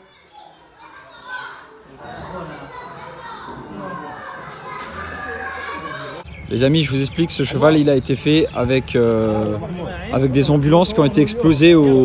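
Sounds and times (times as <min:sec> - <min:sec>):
children playing and chattering: 0:00.0 - 0:12.0.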